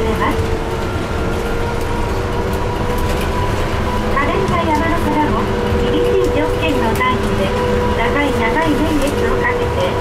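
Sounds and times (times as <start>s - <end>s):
bus rumbling: 0.0s - 10.0s.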